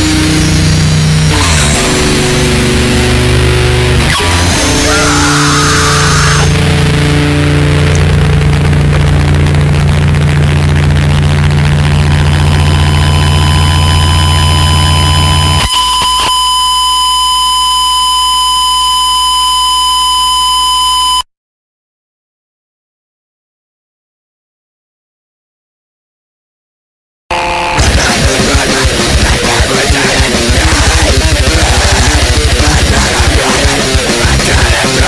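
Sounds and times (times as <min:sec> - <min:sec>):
heavy low drone: 0:00.0 - 0:15.6, 0:27.8 - 0:35.0
buzzing high tone: 0:00.0 - 0:21.2, 0:27.3 - 0:35.0
distorted noise wall: 0:00.0 - 0:21.2, 0:27.3 - 0:35.0.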